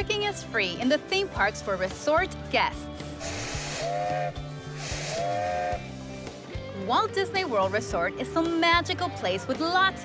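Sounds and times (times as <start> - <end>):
background music: 0.0 - 10.0
hiss of steam: 3.2 - 3.9, 4.8 - 5.3.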